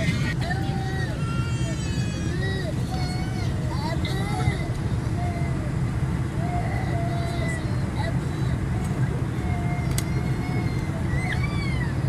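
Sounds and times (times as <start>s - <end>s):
airliner cabin rumble: 0.0s - 12.0s.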